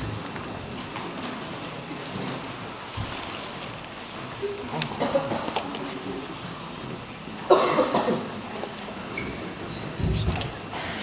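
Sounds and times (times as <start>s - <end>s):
person coughing: 5.0s - 5.6s, 7.5s - 8.3s.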